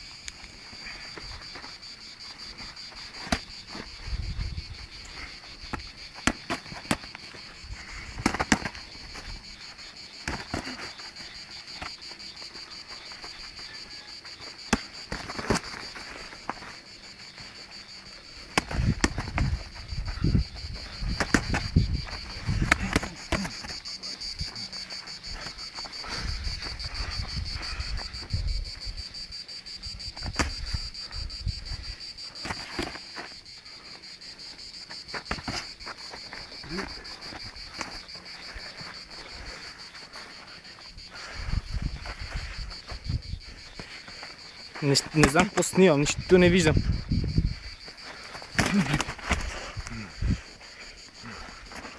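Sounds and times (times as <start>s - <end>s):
insects trilling: 0.0s - 51.9s
boxing gloves landing punches: 8.2s - 8.8s, 10.2s - 10.8s, 14.7s - 15.8s, 21.1s - 21.8s, 22.5s - 23.8s, 48.5s - 49.5s.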